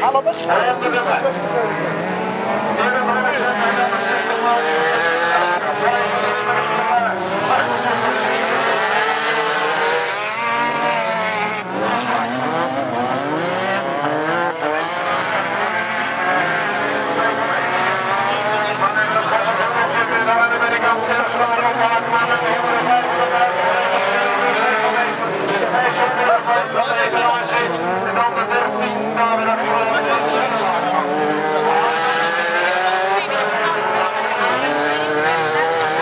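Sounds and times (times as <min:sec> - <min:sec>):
racing car engines revving: 0:00.0 - 0:36.0.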